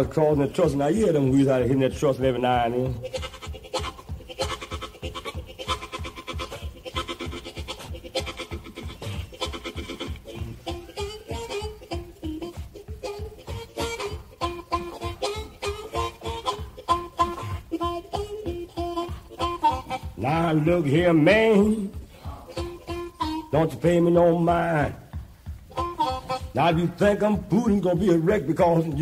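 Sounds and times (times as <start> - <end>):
blues harmonica playing: 0.0 - 29.0.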